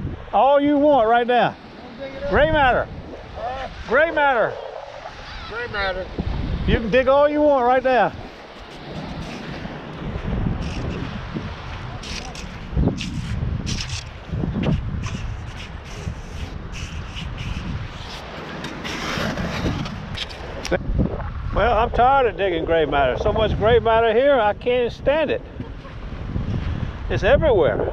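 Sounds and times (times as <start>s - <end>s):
wind rumbling on microphone: 0.0s - 27.9s.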